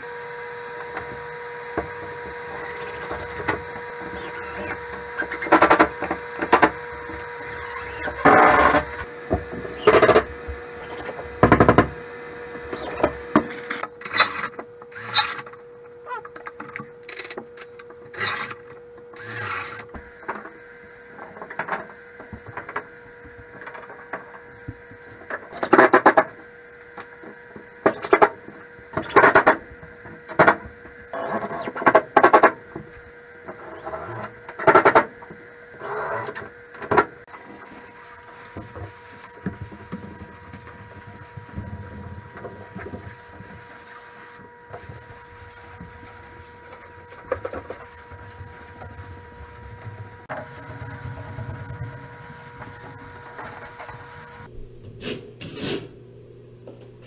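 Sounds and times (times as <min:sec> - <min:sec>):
faint constant hum: 0:00.0 - 0:57.0
knocks and scrapes on drywall: 0:54.9 - 0:56.0.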